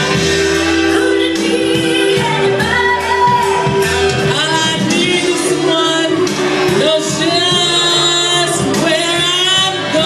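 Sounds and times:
pop backing track: 0:00.0 - 0:10.0
woman singing into microphone: 0:00.0 - 0:10.0.

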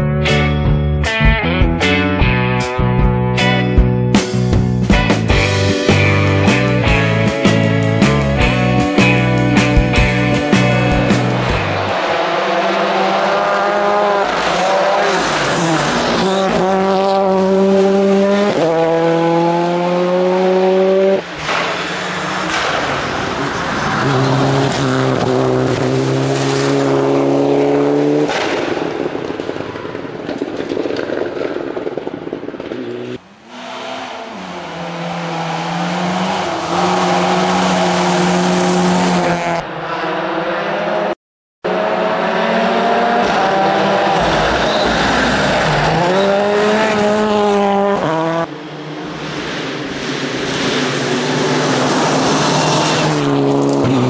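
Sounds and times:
rally car engines revving: 0:05.4 - 0:30.2, 0:32.5 - 0:54.0.

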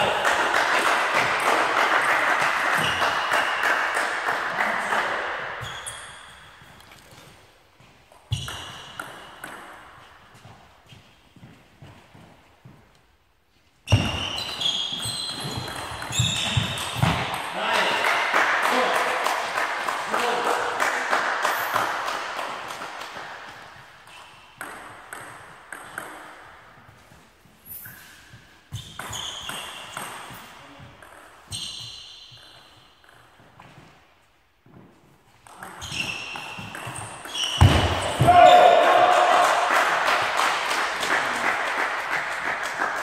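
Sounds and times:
crowd cheering and applause: 0:00.0 - 0:05.2, 0:38.2 - 0:43.0
table tennis ball bouncing: 0:08.2 - 0:10.0, 0:13.9 - 0:17.6, 0:21.7 - 0:26.8, 0:28.7 - 0:33.5, 0:35.4 - 0:38.4.

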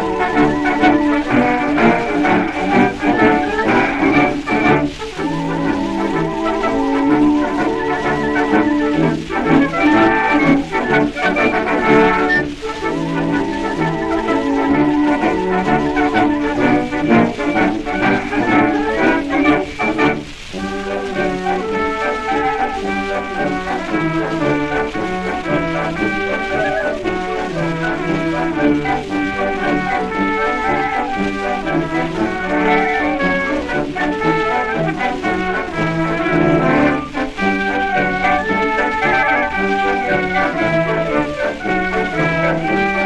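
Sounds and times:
military brass band playing march: 0:00.0 - 0:43.0.

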